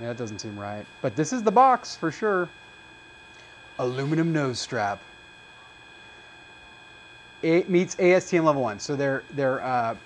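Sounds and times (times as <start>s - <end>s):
thin high electrical tones: 3.3s - 5.2s.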